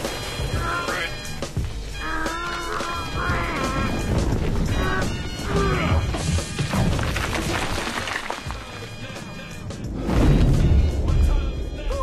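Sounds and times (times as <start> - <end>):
rocks crashing: 0.0 - 1.8, 3.0 - 11.3
background music: 0.0 - 12.0.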